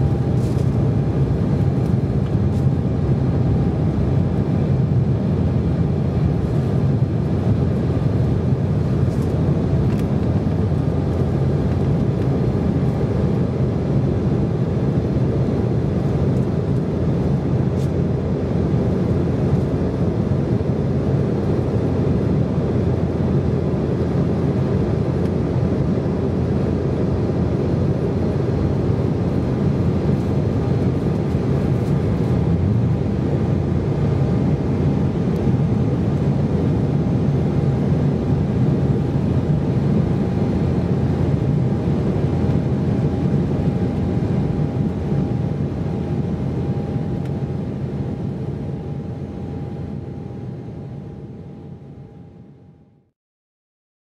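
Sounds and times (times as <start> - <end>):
jet engine drone: 0.0 - 53.1.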